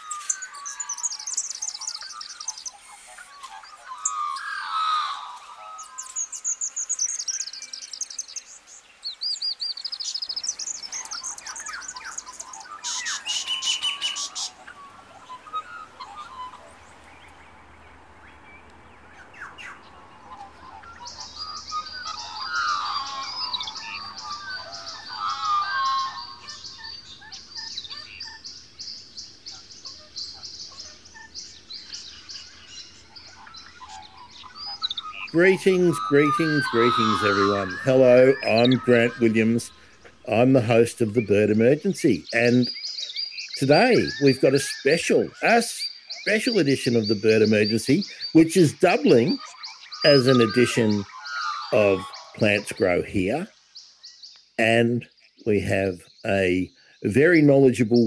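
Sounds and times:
birds chirping and singing: 0.0s - 58.0s
high-pitched bird trilling: 9.3s - 17.3s, 19.1s - 53.5s.

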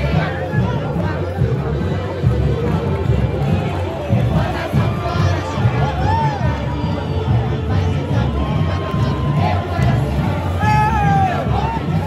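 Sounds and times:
crowd singing and cheering: 0.0s - 12.0s
deep bass drums beating: 0.0s - 12.0s
samba drum section playing: 0.0s - 12.0s.

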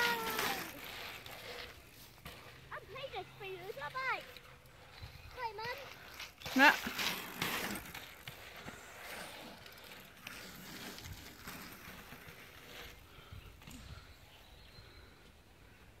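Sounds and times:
bike rolling on tarmac: 0.0s - 16.0s.

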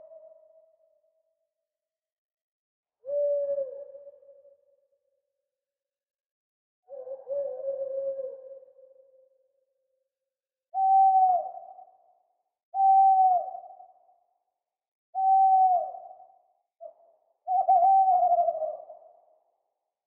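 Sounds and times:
owl hooting: 10.8s - 11.9s, 12.8s - 13.9s, 15.2s - 16.2s, 16.8s - 19.1s.

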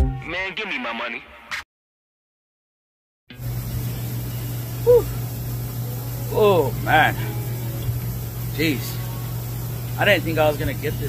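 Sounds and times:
steady low hum: 3.4s - 11.0s.

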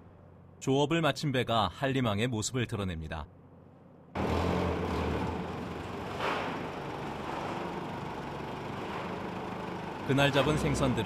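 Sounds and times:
boat engine humming: 4.2s - 11.0s.

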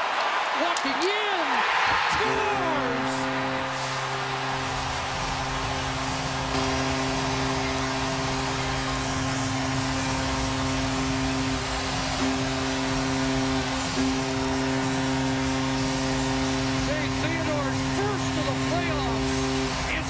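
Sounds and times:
crowd cheering: 0.0s - 20.0s
goal horn: 2.1s - 20.0s.

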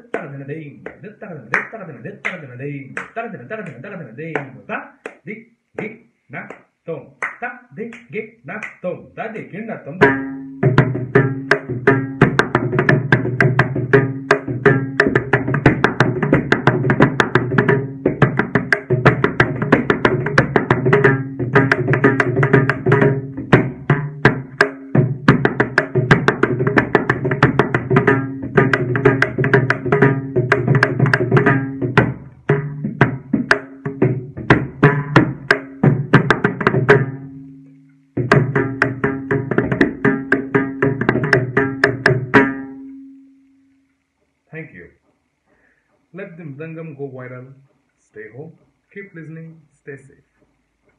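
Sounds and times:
drum solo with fast hand strokes: 9.9s - 37.5s, 38.2s - 42.8s.

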